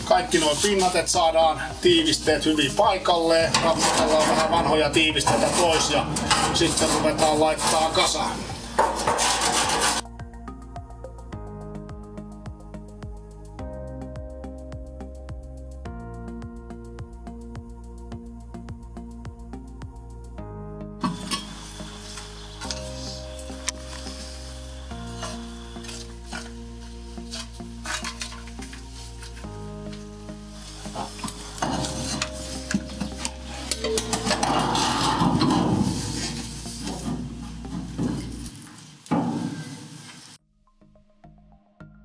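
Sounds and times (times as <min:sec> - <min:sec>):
metal scraper scraping steel plate: 0:03.4 - 0:10.0, 0:21.0 - 0:23.0, 0:27.3 - 0:28.5, 0:30.9 - 0:38.4.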